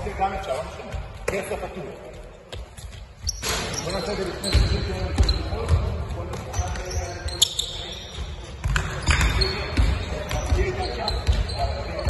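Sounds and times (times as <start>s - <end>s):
basketballs bouncing on hardwood floor: 0.6s - 12.0s
high shoe squeak: 2.6s - 12.0s.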